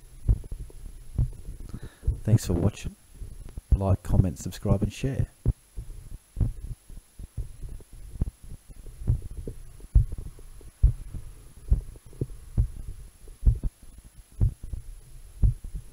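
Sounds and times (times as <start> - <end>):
heartbeat through stethoscope: 0.0 - 3.8, 5.2 - 15.9.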